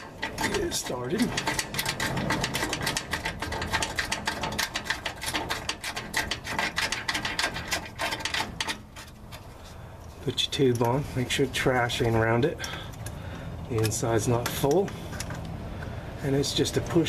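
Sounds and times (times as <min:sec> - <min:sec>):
rapid ratchet clicking: 0:00.0 - 0:09.1.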